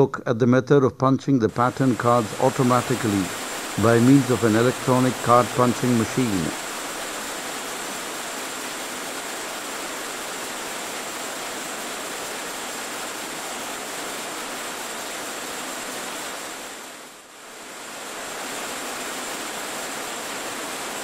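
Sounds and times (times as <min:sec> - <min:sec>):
film soundtrack hiss: 0:00.0 - 0:21.0.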